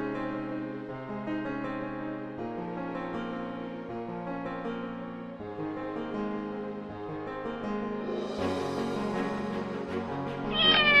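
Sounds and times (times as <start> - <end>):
background music: 0.0 - 11.0
cat meowing: 10.5 - 11.0.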